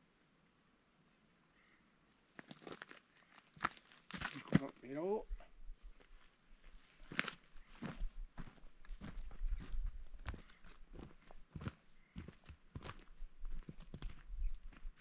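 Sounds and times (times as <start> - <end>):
footsteps crunching through dry leaves: 6.0 - 13.0.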